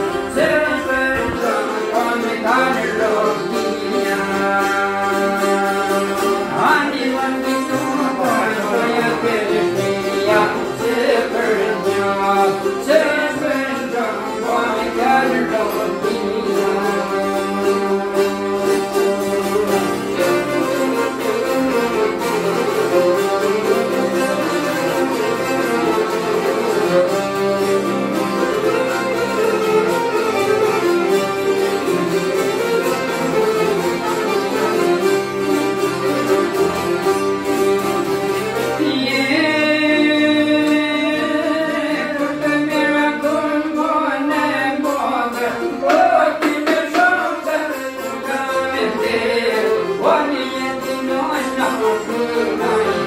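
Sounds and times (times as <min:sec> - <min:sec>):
accordion: 0:00.0 - 0:53.0
plucked lutes: 0:00.0 - 0:53.0
violin melody: 0:00.0 - 0:53.0.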